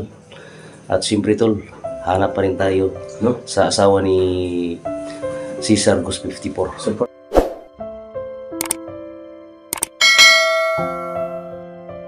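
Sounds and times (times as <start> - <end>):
soft keyboard music: 0.0 - 12.0
quick clicks: 8.6 - 8.8, 9.7 - 10.0
bright bell chime: 10.0 - 11.4.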